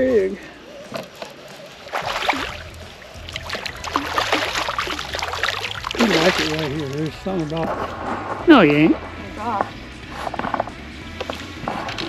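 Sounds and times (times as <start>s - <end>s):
fish splashing in water: 1.0s - 7.8s.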